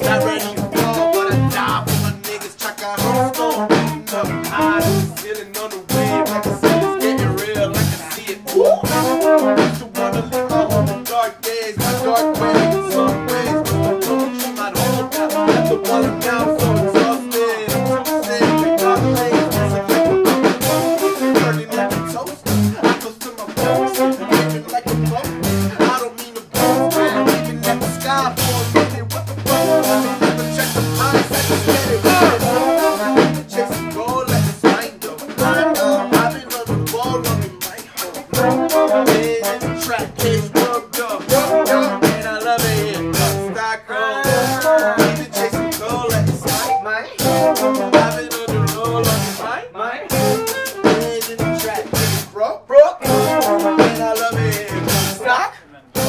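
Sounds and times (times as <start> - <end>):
deep bass line: 0.0 - 5.3, 5.9 - 11.1, 11.7 - 22.9, 23.6 - 25.9, 26.5 - 37.7, 38.3 - 40.6, 41.3 - 43.6, 44.2 - 49.5, 50.1 - 52.3, 53.0 - 55.2
live band playing hip-hop: 0.0 - 56.0
vocals over band: 0.0 - 56.0.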